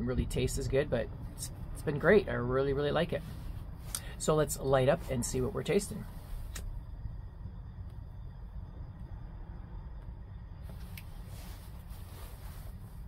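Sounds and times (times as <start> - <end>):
soft hiss: 0.0 - 13.0
steady low rumble: 0.0 - 13.0.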